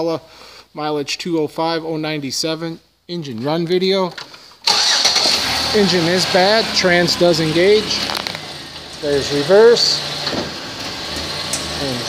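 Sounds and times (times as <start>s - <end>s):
car engine running: 5.0s - 12.0s.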